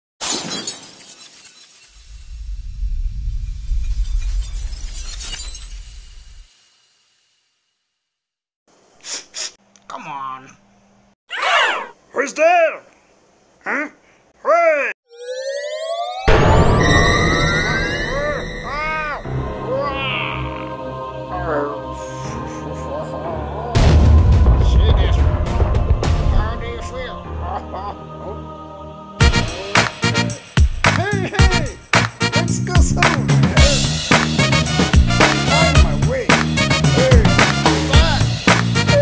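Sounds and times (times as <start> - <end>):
glass shattering: 0.2 - 1.9, 4.5 - 6.4
cartoonish vocal sound effects: 11.3 - 11.9, 13.6 - 15.0, 18.1 - 23.8
background music: 15.9 - 39.0
deep low rumble: 23.8 - 27.0.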